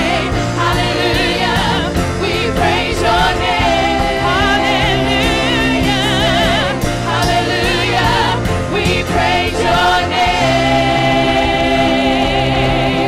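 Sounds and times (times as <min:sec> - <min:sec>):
band playing: 0:00.0 - 0:13.0
singers with vibrato: 0:00.0 - 0:13.0.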